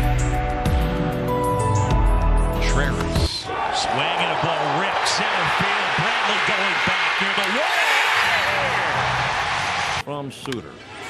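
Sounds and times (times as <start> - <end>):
ballpark crowd cheering: 3.4 - 10.0.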